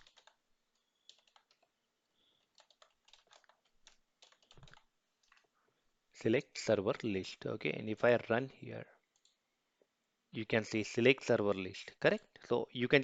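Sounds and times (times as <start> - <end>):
typing on computer keyboard: 0.0 - 1.7, 2.4 - 5.4.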